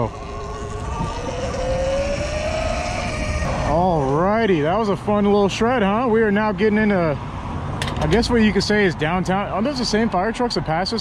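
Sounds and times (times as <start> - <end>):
electric dirt bike motor whining: 0.0 - 4.3
wind rumble on microphone: 0.0 - 5.4.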